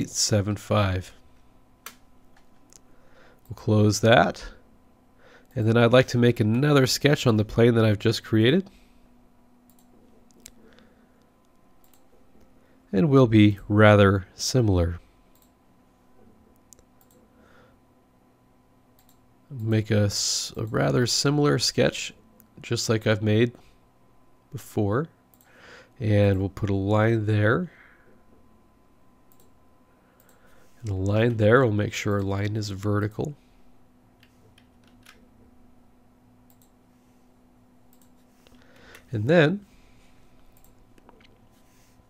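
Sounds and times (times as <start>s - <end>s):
faint steady hum: 0.0s - 42.0s
computer mouse clicks: 9.7s - 10.6s, 11.4s - 12.2s, 15.3s - 15.5s, 16.6s - 17.2s, 19.0s - 19.2s, 29.3s - 29.6s, 34.2s - 35.2s, 36.5s - 36.8s, 37.9s - 39.1s, 40.4s - 41.5s.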